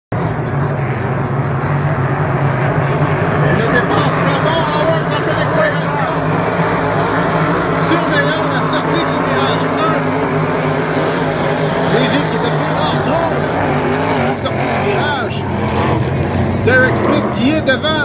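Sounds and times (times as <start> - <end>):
racing boat engines droning: 0.1 - 18.0.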